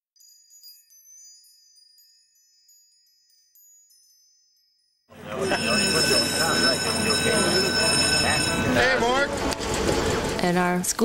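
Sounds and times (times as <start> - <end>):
chime-like ringing tone: 0.2 - 10.4
chatter of many voices: 5.1 - 10.4.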